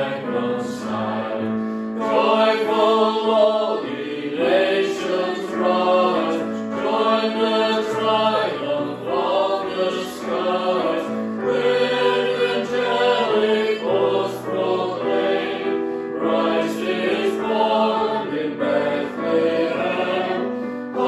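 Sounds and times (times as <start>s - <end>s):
choir singing a hymn: 0.0s - 21.0s.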